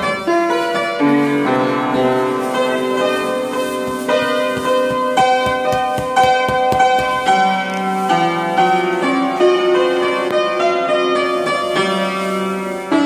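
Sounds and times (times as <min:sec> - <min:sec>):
upright piano playing: 0:00.0 - 0:13.0.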